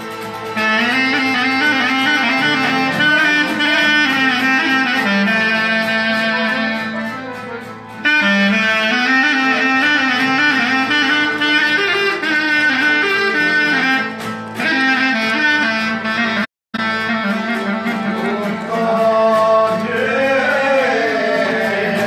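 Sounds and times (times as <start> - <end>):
clarinet folk melody: 0.0 - 22.0
violin accompaniment: 0.0 - 22.0.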